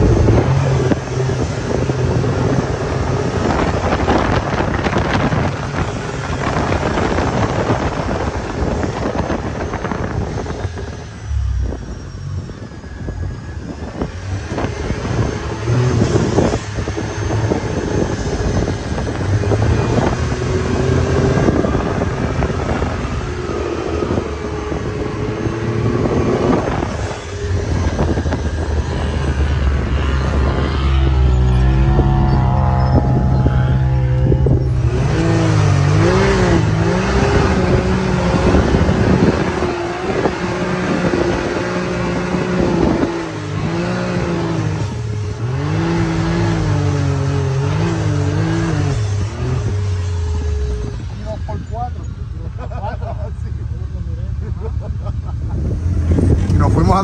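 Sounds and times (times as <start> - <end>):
wind noise: 0.0 - 52.6, 54.4 - 57.0
engine revving under throttle: 0.0 - 53.3, 54.1 - 57.0.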